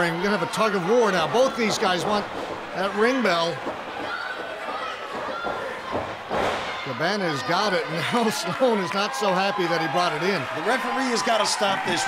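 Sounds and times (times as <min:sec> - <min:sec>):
crowd murmur: 0:00.0 - 0:08.9.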